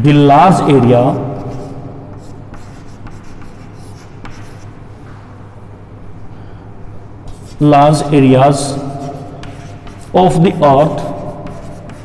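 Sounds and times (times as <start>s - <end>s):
chalk scratching on chalkboard: 1.3s - 4.7s, 7.3s - 7.7s, 8.6s - 12.0s.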